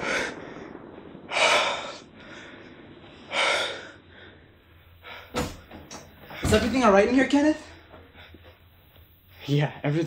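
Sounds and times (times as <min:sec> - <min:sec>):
man breathing hard: 0:00.0 - 0:06.4.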